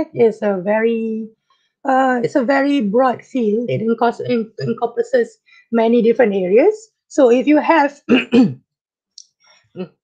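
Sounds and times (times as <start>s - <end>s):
man clearing his throat: 8.1s - 8.6s.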